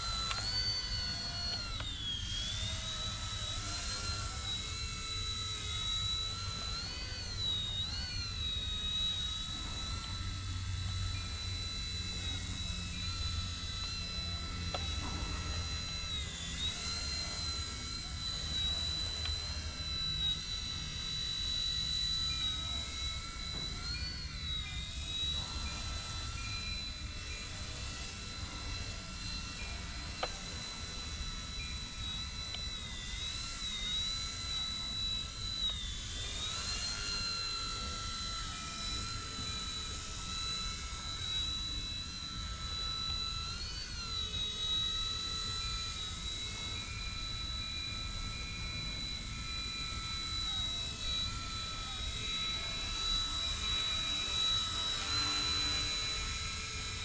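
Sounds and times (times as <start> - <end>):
helicopter rotor whine: 0.0 - 57.0.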